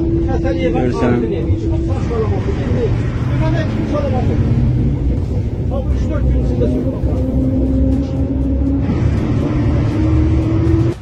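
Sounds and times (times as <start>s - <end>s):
men talking indistinctly: 0.0s - 8.7s
vehicle engine and road rumble: 0.0s - 11.0s.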